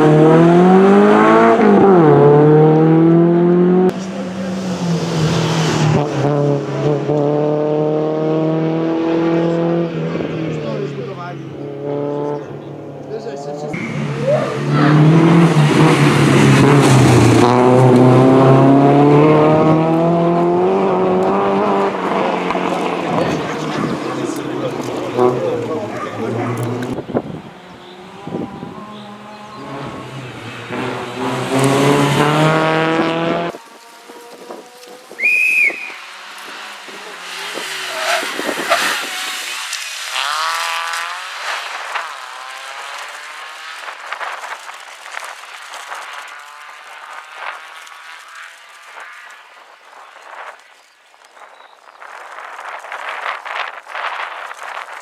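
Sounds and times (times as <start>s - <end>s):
rally car engine revving: 0.0s - 49.4s.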